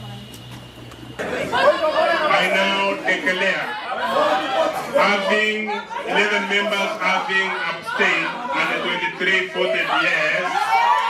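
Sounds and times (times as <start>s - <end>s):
room murmur: 0.0s - 11.0s
man speaking loudly: 1.6s - 10.6s.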